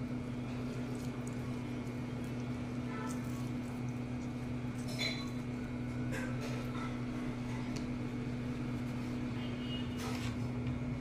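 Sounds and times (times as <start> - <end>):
steady low hum: 0.0 - 11.0
lemon juice squelching and dripping: 0.4 - 5.5.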